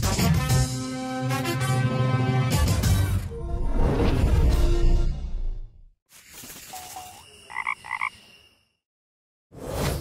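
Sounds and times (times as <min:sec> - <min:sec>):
frog croaks: 0:06.7 - 0:08.3.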